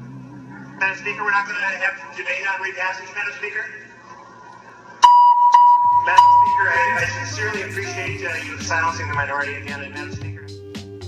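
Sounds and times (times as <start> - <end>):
loud steady electronic beep: 5.0 - 7.3.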